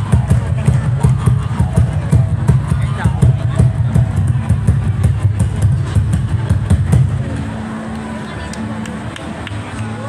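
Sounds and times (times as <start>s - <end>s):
rapid low drumbeats: 0.0s - 8.0s.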